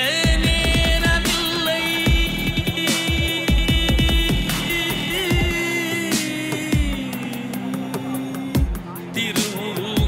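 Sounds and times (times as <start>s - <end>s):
held melody: 0.0s - 10.0s
drum stroke: 0.3s - 7.3s.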